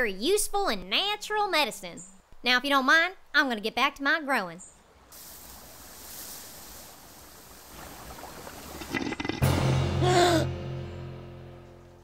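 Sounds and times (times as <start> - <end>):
garden hose spraying water: 5.1 - 9.2.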